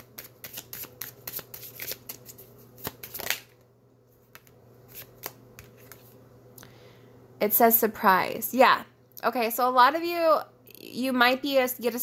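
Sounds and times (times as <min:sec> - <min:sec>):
cards shuffled by hand: 0:00.0 - 0:03.6, 0:04.2 - 0:06.2.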